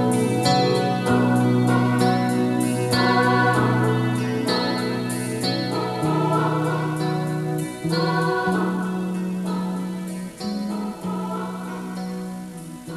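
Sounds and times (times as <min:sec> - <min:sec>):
keyboard melody: 0:00.0 - 0:12.9.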